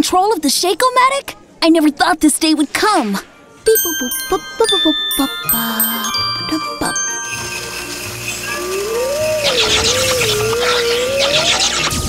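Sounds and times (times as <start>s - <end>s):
background music: 3.6s - 12.0s
wavering whistle-like tone: 6.4s - 12.0s.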